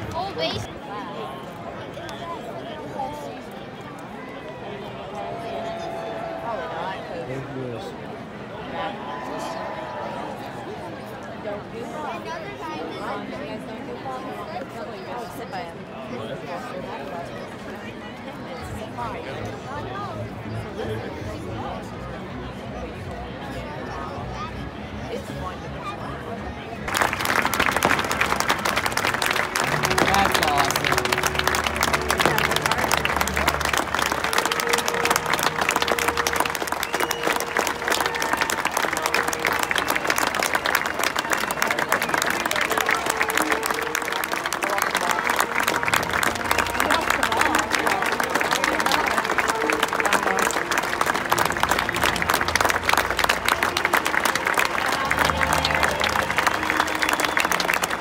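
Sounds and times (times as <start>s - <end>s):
music over public address: 16.2s - 58.0s
crowd applauding: 26.9s - 58.0s
voice over public address: 29.7s - 33.6s.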